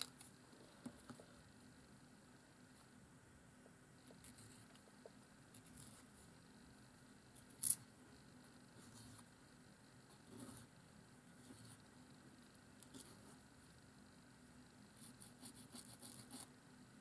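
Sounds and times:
scratching and rustling of pen nib: 4.0 - 6.3, 14.9 - 16.5.

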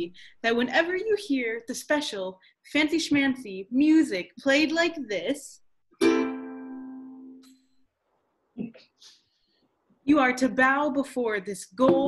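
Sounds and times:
ukulele chord strummed: 6.0 - 7.5.

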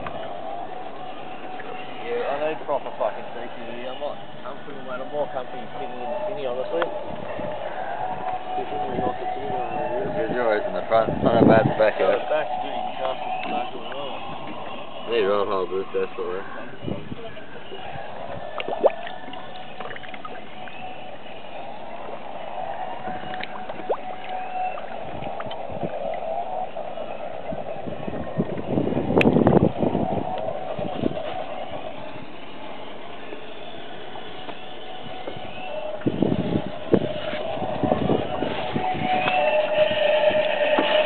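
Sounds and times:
underwater gurgling and sloshing: 6.6 - 41.0
water splashing: 16.7 - 41.0.

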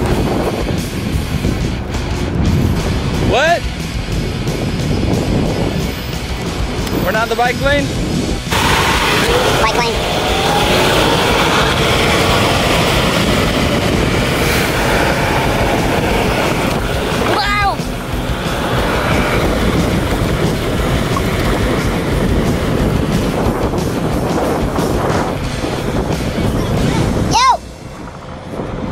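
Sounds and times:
road and traffic noise: 0.0 - 28.9
wind rushing over microphone: 0.0 - 28.9.

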